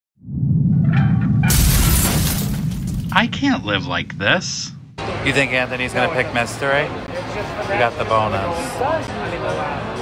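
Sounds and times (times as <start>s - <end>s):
low rumble: 0.2s - 5.7s
stone wall crashing: 1.5s - 3.2s
music: 5.0s - 10.0s.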